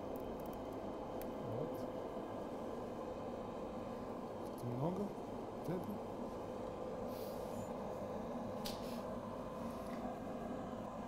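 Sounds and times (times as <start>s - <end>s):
kitchen hum and hiss: 0.0s - 11.0s.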